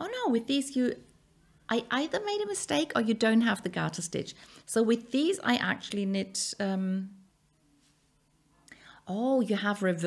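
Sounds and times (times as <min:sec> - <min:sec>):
faint breath: 0:04.4 - 0:04.7, 0:08.7 - 0:09.1.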